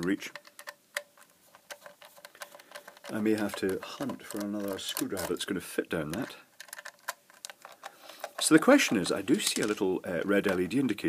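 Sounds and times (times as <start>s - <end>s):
screwdriver clicking and scraping: 0.3s - 5.4s, 6.2s - 9.7s.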